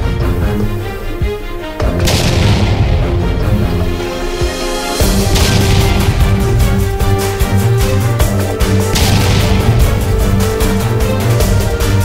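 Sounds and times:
cinematic music with sustained tones: 0.0s - 12.0s
deep boom hit: 2.0s - 4.0s, 5.1s - 7.4s, 8.9s - 10.9s.

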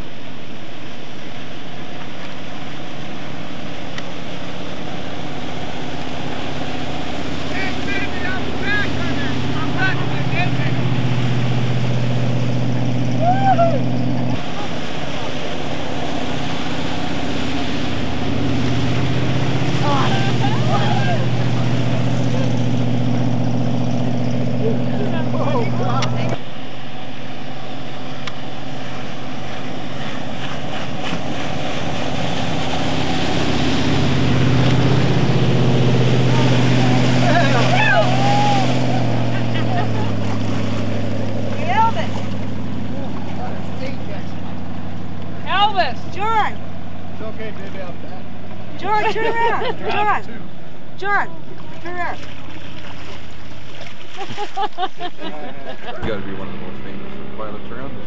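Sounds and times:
motorboat engine running: 0.0s - 58.0s
water noise: 0.0s - 58.0s
wind: 0.0s - 58.0s.

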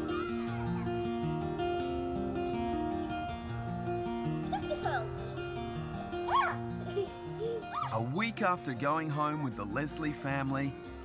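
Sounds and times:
background music with held notes: 0.0s - 11.0s
dog whining: 6.2s - 6.6s.

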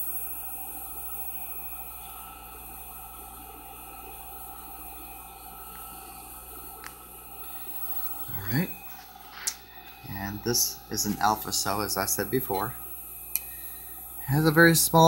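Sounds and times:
background hum and hiss: 0.0s - 15.0s.

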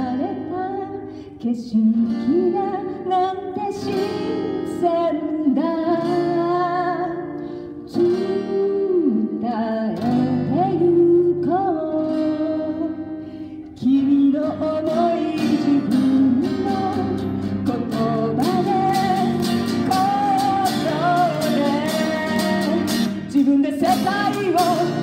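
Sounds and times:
woman singing: 0.0s - 25.0s
strummed guitar chords: 2.2s - 25.0s.

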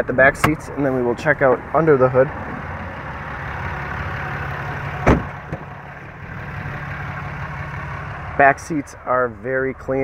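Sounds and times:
diesel engine idling: 0.0s - 10.0s
sharp clunk: 5.0s - 5.7s.

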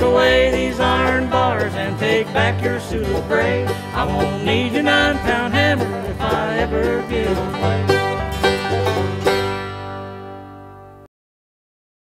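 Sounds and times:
banjo: 0.0s - 11.1s
bluegrass band final chords: 0.0s - 11.1s.

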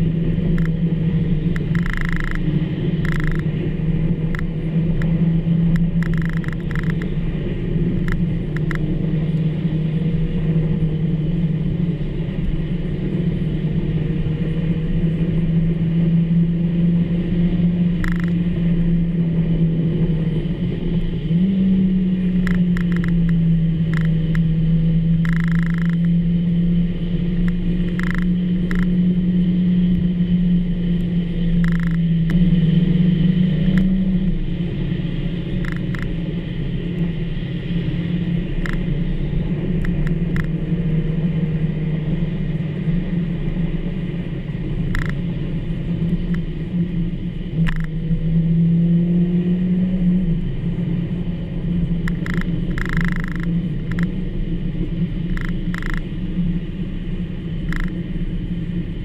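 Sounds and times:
car engine droning in cabin: 0.0s - 59.0s
tyre noise on wet road: 0.0s - 59.0s.

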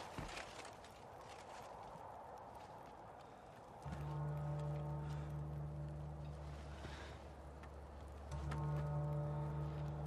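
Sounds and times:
sustained music chord: 3.8s - 10.0s.

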